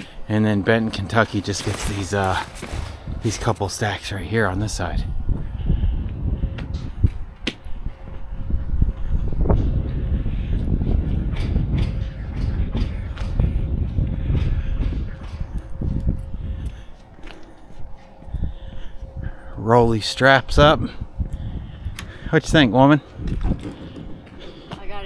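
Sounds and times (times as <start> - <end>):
steady low rumble: 0.0 - 25.0.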